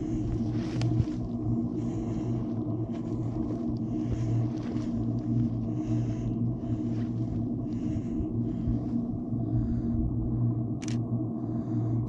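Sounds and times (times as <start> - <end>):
footsteps on dirt trail: 0.0 - 9.0
steady low rumble: 0.0 - 12.0.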